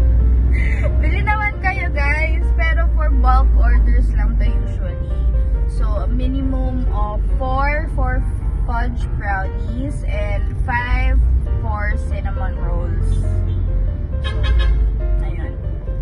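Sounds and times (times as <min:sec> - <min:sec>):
background music: 0:00.0 - 0:16.0
car engine rumble: 0:00.0 - 0:16.0
road noise inside car: 0:00.0 - 0:16.0
woman talking: 0:00.6 - 0:05.1, 0:05.7 - 0:13.3.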